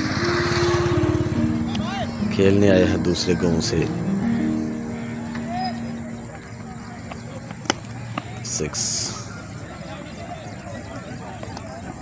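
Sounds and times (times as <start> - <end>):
voices outdoors: 0.0 - 12.0.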